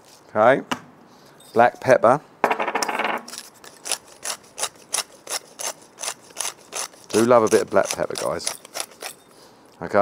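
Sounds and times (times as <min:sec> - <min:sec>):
pepper mill grinding: 0:03.2 - 0:09.4.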